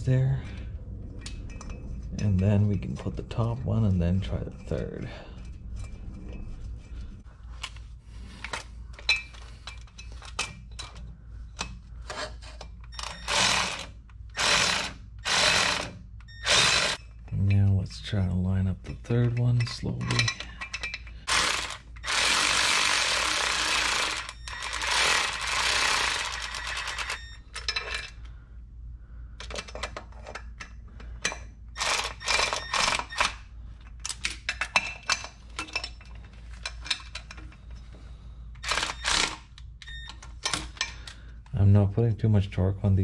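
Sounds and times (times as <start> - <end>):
cordless electric ratchet running: 13.0 - 17.0, 21.2 - 27.2, 31.8 - 33.0, 38.6 - 39.4
ratchet and socket clicks: 21.2 - 27.2, 31.8 - 33.4, 38.6 - 40.0.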